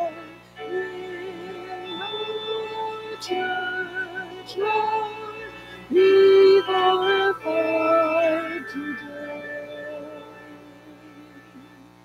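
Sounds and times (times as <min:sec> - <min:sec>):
voices singing a slow hymn: 0:00.0 - 0:11.7
instrumental accompaniment: 0:00.0 - 0:12.0.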